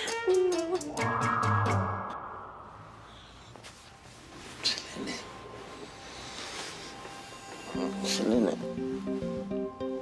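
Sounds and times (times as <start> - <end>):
bedclothes rustling: 3.5 - 10.0.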